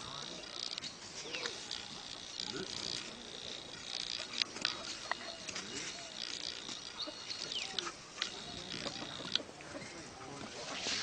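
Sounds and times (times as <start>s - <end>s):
faint low animal sounds: 0.0s - 11.0s.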